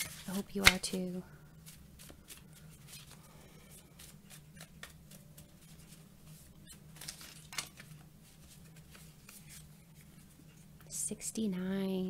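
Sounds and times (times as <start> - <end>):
cards being shuffled: 0.0 - 10.4.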